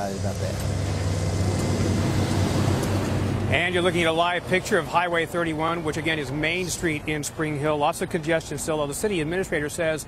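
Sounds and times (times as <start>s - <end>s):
diesel engine running: 0.0s - 5.8s.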